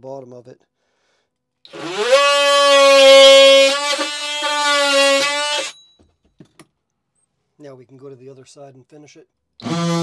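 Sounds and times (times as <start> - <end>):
oscillating multi-tool cutting wood: 1.7 - 5.8, 9.6 - 10.0.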